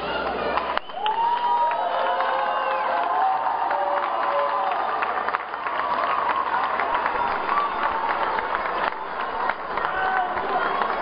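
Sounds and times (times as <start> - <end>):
crowd cheering and shouting: 0.0 - 11.0
people clapping: 0.1 - 11.0.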